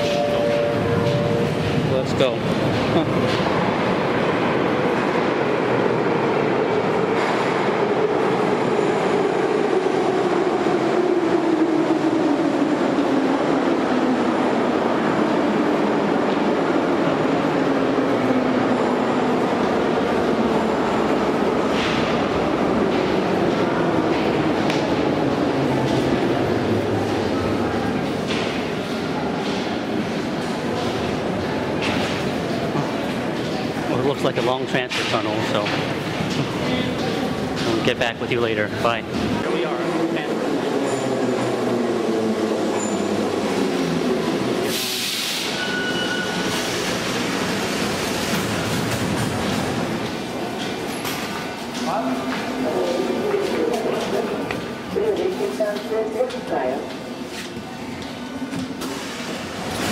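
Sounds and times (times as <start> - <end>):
metro train rumbling: 0.0 - 59.9.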